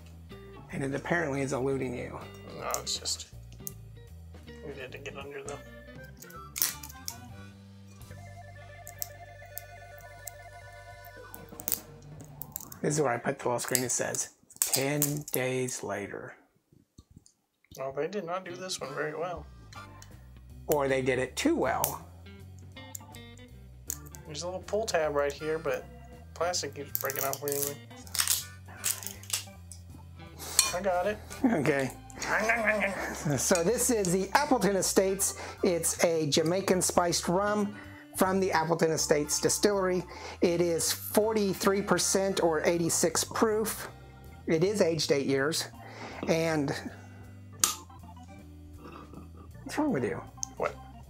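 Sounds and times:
background music with held tones: 0:00.0 - 0:16.3, 0:17.7 - 0:51.0
plastic shrink-wrap crackling: 0:27.0 - 0:29.4.

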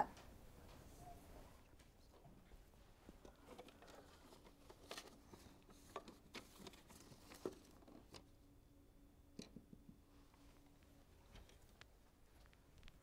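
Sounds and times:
faint steady hum: 0:00.0 - 0:13.0
pencils tapping and scratching on paper: 0:03.1 - 0:08.3.

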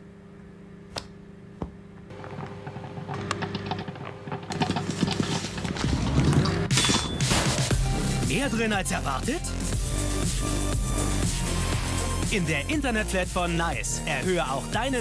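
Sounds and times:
microwave oven humming: 0:00.0 - 0:08.3
popcorn popping: 0:02.0 - 0:07.8
popcorn bursting out rush: 0:02.1 - 0:06.7.

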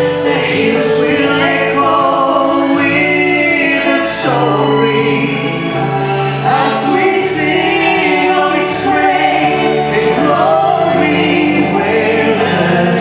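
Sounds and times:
man and woman singing gospel duet: 0:00.0 - 0:13.0
musical accompaniment: 0:00.0 - 0:13.0.

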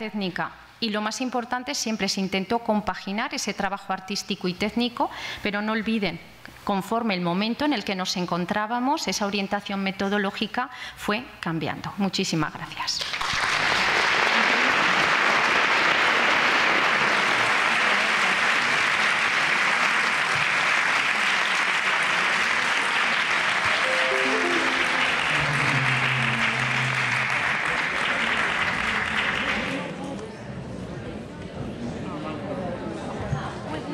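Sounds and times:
audience applauding: 0:13.2 - 0:29.9.

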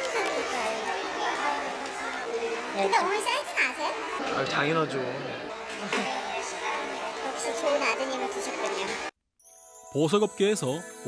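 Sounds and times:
crowd chatter: 0:00.0 - 0:09.1.

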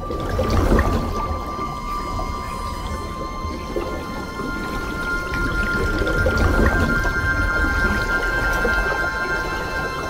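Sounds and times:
sustained high tones: 0:00.0 - 0:10.0.

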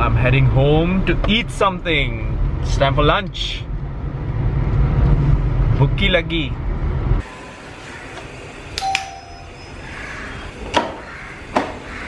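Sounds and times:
car road noise rumbling: 0:00.0 - 0:07.3
short electronic beep: 0:08.8 - 0:09.9.

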